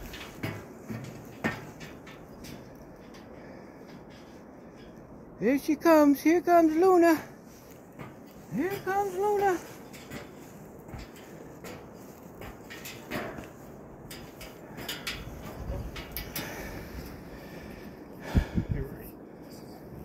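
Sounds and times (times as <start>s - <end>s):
footsteps on steel grate stairs: 0.0s - 20.0s.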